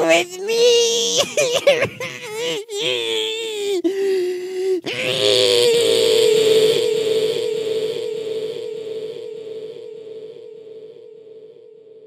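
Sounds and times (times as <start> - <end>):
voice with echo effect: 0.0 - 12.0.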